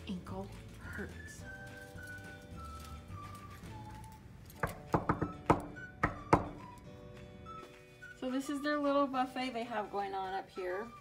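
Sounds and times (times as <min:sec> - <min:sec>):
knocking on wooden door: 0:04.6 - 0:06.6.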